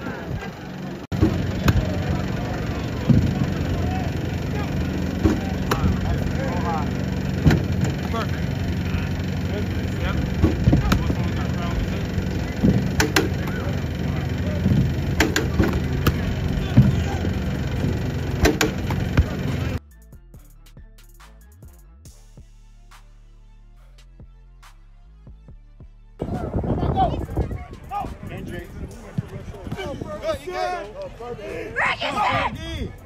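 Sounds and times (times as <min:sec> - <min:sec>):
low hum: 0:00.0 - 0:19.8
voices talking: 0:00.0 - 0:19.8, 0:26.2 - 0:33.0.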